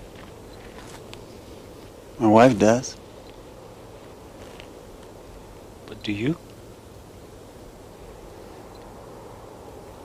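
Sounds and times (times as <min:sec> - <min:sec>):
faint outdoor hiss and rumble: 0:00.0 - 0:10.0.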